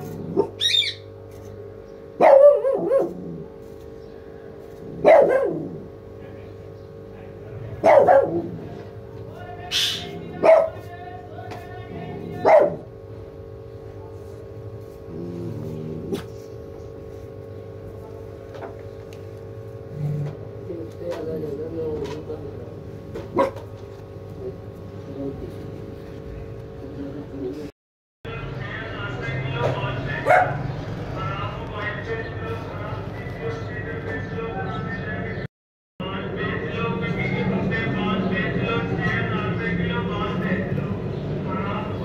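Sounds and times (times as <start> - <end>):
dog whining: 0.0 - 1.1
dog barking: 2.2 - 3.3, 5.0 - 5.8, 7.8 - 8.6, 10.4 - 10.9, 12.3 - 12.9, 23.3 - 23.6, 30.2 - 30.8.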